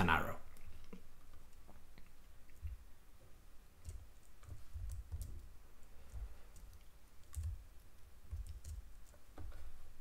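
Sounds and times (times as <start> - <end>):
faint keyboard clicks: 3.8 - 9.7.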